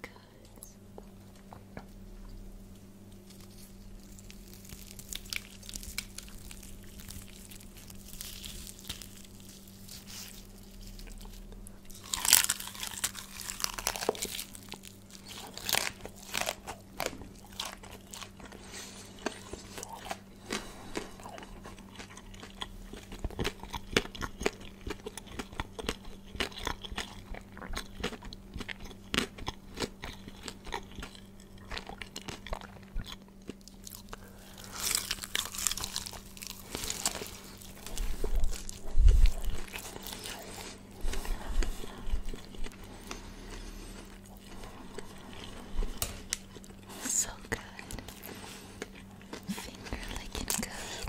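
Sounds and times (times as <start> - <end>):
crunching fried chicken: 3.1 - 51.0.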